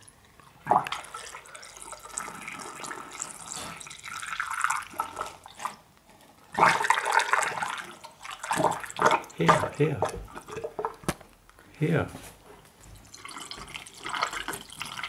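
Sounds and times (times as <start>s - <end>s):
liquid trickling through funnel: 0.0s - 11.0s, 12.9s - 15.0s.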